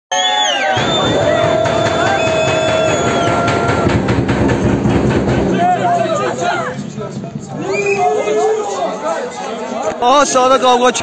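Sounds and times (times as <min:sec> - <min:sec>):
people shouting: 0:00.4 - 0:04.0.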